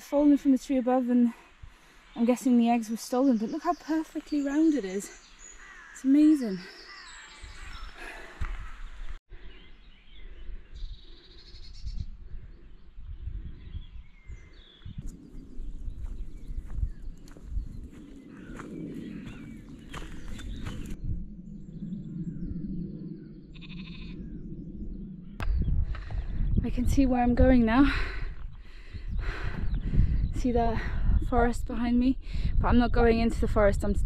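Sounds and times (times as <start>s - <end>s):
footsteps on grass: 15.0s - 21.0s
sheep bleating: 23.6s - 24.2s.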